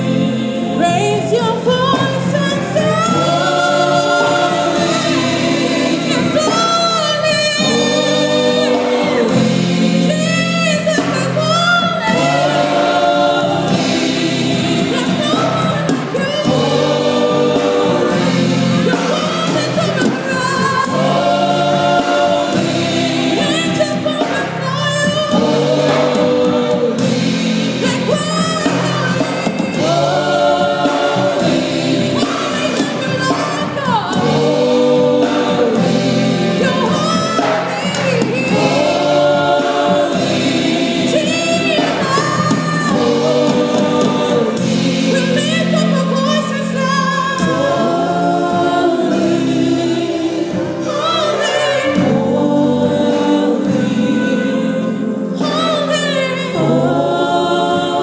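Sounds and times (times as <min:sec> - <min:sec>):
backing singers: 0:00.0 - 0:58.0
keyboard: 0:00.0 - 0:58.0
woman singing lead: 0:00.0 - 0:58.0.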